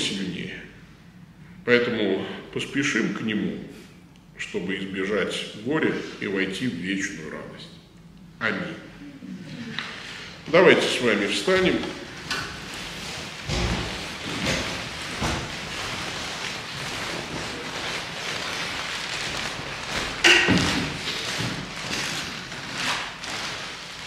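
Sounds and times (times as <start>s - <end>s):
shuffling steps: 9.5s - 24.0s
clothing rustling: 11.6s - 24.0s
chairs knocking on parquet floor: 13.4s - 15.9s, 20.2s - 22.3s.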